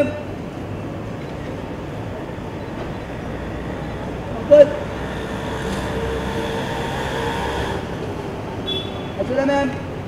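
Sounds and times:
street background rumble and hiss: 0.0 - 10.0.

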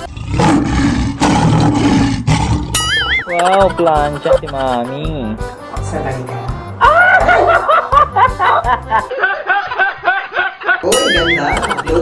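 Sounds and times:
man laughing hard: 6.8 - 12.0.

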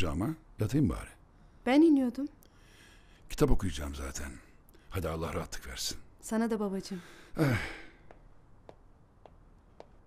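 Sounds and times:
man sighing: 7.3 - 8.0
footsteps on carpeted stairs: 8.0 - 10.0.

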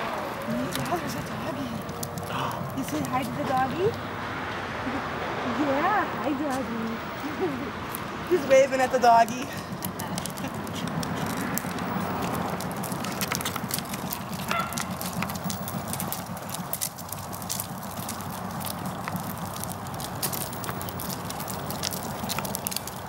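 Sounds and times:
stroller wheels rolling on concrete: 0.0 - 23.0.

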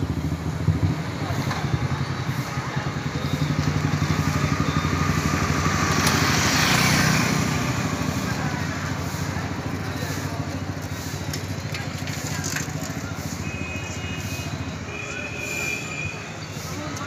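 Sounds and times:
vehicle passing: 0.0 - 13.4
street traffic: 0.0 - 17.0.

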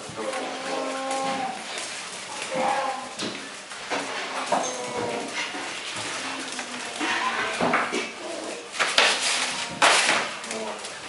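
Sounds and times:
bear cubs calling: 2.3 - 3.2.

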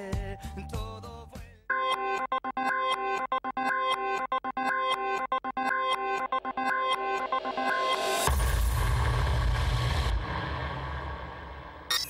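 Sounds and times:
deep synthetic rumble: 8.3 - 11.9.

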